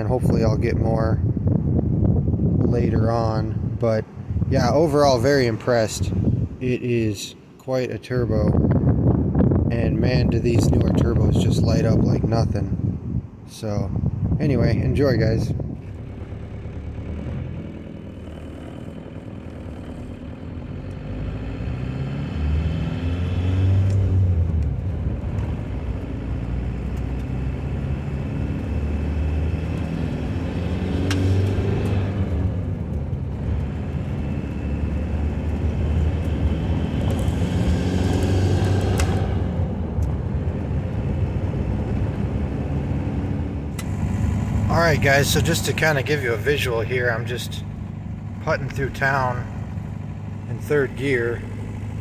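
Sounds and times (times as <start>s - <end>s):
diesel engine accelerating: 13.9s - 52.0s.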